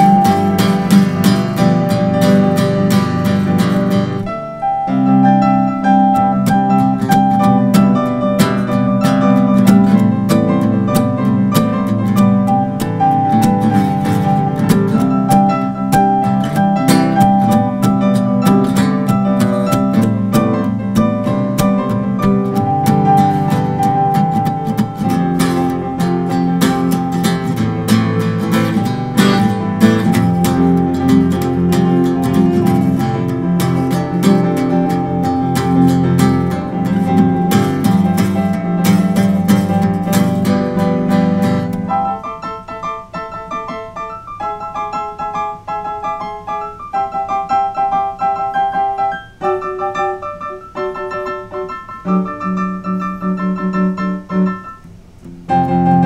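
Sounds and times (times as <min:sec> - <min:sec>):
strummed acoustic guitar: 0:00.0 - 0:04.3, 0:06.0 - 0:42.1
digital piano: 0:00.0 - 0:56.0.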